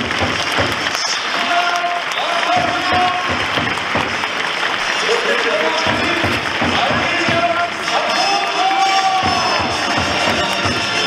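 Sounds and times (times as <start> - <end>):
stadium crowd applauding: 0.0 - 11.0
announcer over loudspeakers: 0.9 - 3.6, 4.9 - 11.0.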